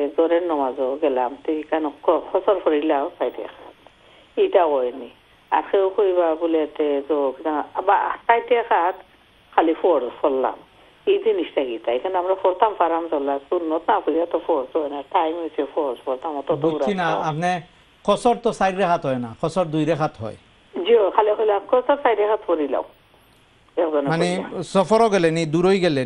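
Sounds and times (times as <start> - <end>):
person talking over phone: 16.3 - 17.6
person speaking close: 16.5 - 20.4.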